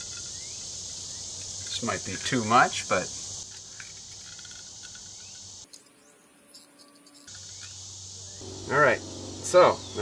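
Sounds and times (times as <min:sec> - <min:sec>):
insect chorus: 0:00.0 - 0:10.0.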